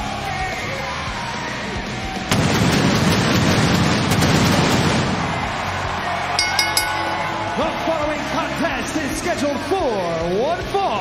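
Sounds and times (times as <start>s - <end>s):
arena crowd cheering: 5.0s - 10.2s.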